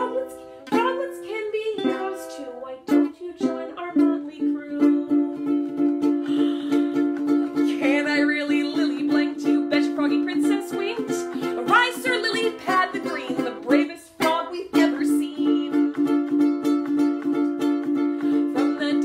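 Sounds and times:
ukulele strumming: 0:00.0 - 0:19.0.

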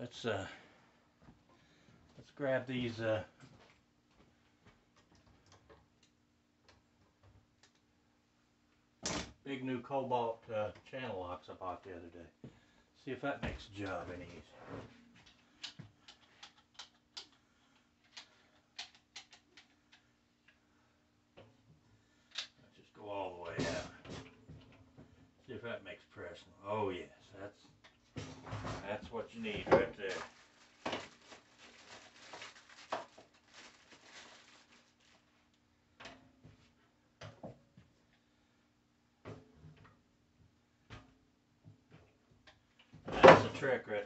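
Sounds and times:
plastic parts clicking and knocking: 0:15.6 - 0:17.4, 0:18.0 - 0:20.1.

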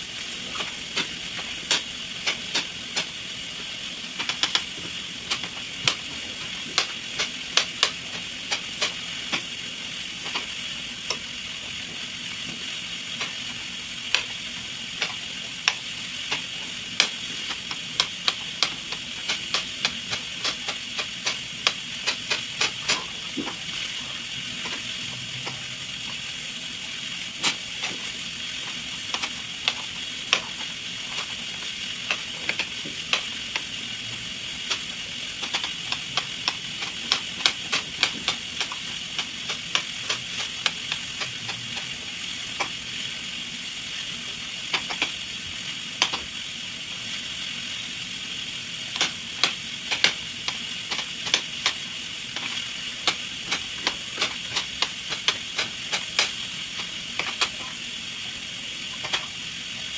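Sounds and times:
steady hiss: 0:00.0 - 0:59.9.

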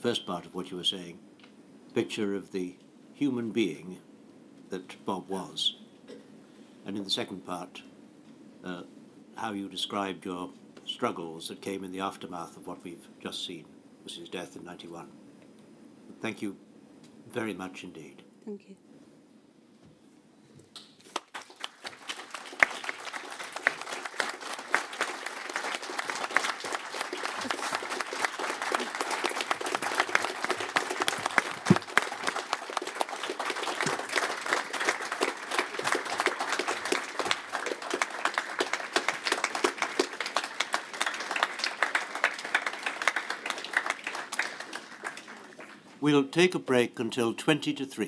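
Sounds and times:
crowd applauding: 0:21.1 - 0:45.9.

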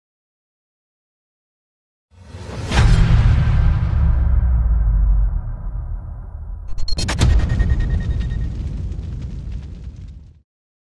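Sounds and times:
deep cinematic boom: 0:02.5 - 0:10.4.

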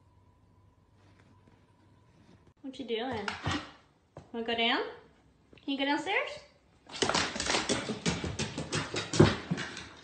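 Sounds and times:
dog paws running down wooden stairs: 0:06.9 - 0:10.0.

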